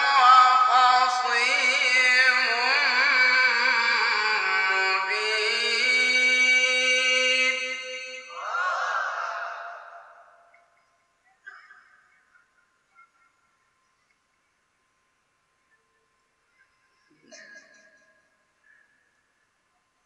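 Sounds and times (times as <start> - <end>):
man chanting recitation: 0.0 - 8.2.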